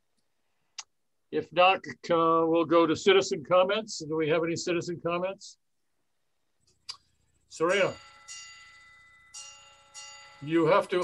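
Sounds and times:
bell-like chime chord: 7.5s - 11.0s.

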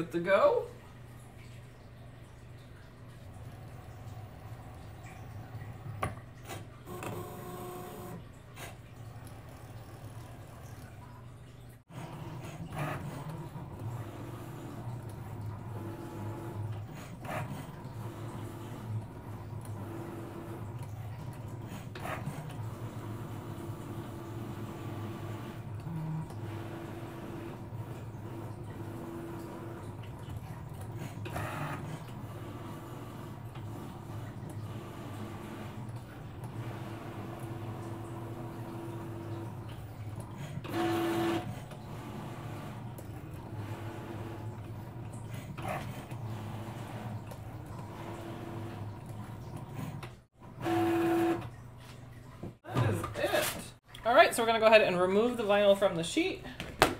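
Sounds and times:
cutting machine motors whirring: 3.2s - 11.2s, 11.8s - 51.6s.

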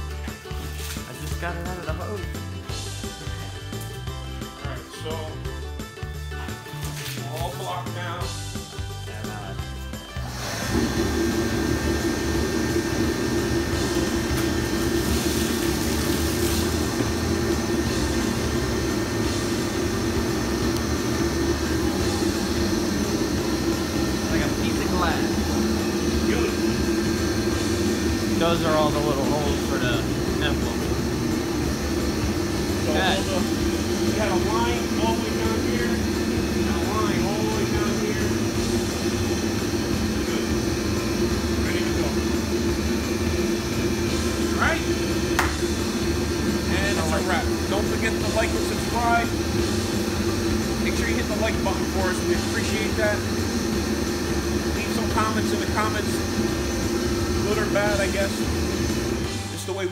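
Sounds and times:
background music: 0.0s - 59.9s
mechanical running noise with hum: 0.0s - 59.9s.

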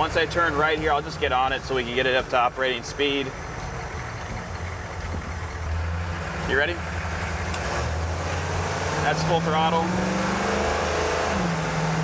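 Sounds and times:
diesel engine at full throttle: 0.0s - 12.0s.

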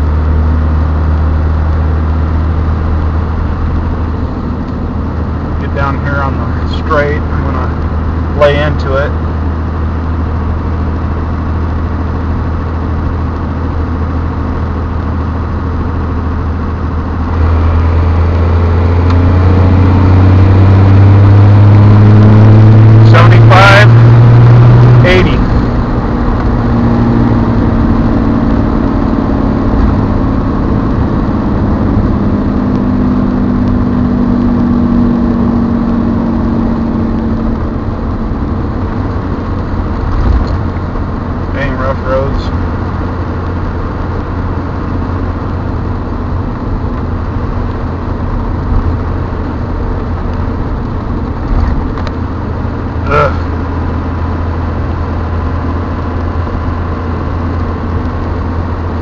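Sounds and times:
diesel engine under hard throttle: 0.0s - 59.0s.

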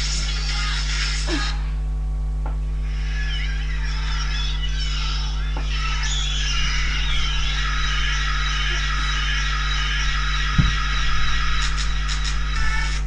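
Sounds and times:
faint music with wavering melody: 0.0s - 13.0s
loud electrical hum: 0.0s - 13.0s.

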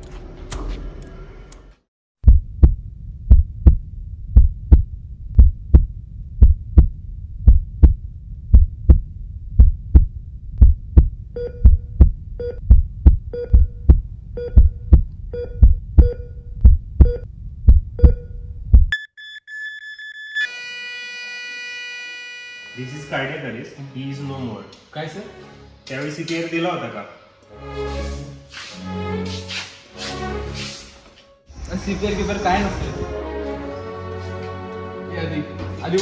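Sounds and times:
heartbeat thumps: 2.2s - 19.0s
patient monitor beep: 11.4s - 11.8s, 13.4s - 13.8s, 15.4s - 16.4s
monitor flatline tone: 19.0s - 23.8s.

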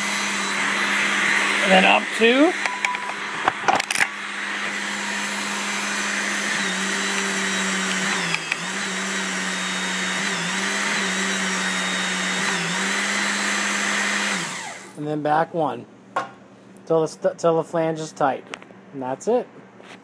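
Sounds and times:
hydraulic pump humming: 0.0s - 15.0s.

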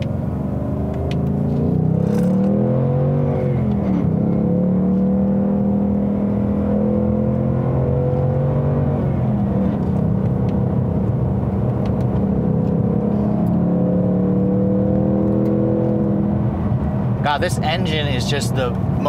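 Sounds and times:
car engine under throttle: 0.0s - 19.0s.

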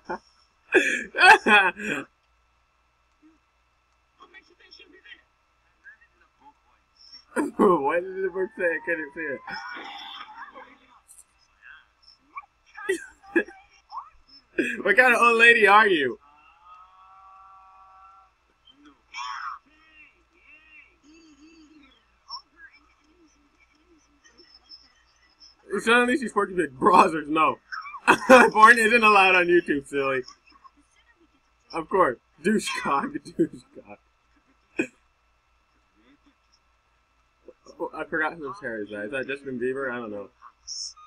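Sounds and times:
faint steady tone: 0.0s - 41.0s
person speaking: 0.8s - 2.0s, 7.1s - 11.2s, 12.8s - 16.2s, 25.5s - 30.3s, 31.7s - 34.0s, 37.5s - 40.3s.

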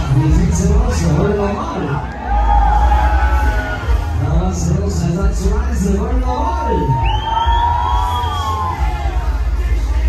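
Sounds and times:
fairground ride music: 0.0s - 10.0s.

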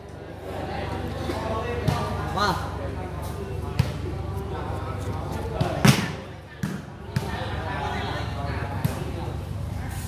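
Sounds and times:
volleyball slaps: 5.6s - 7.4s.

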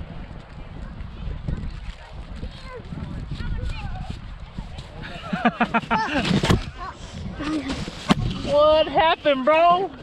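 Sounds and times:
children shouting and laughing: 5.0s - 8.5s.

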